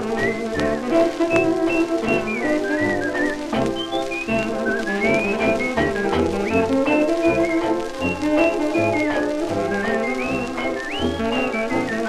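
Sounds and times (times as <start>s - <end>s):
old dance band recording: 0.0s - 12.0s
record surface clicks: 0.0s - 12.0s.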